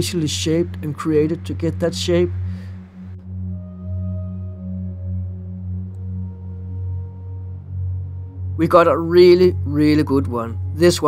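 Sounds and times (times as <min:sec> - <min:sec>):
ambient music with low drone: 0:00.0 - 0:11.0.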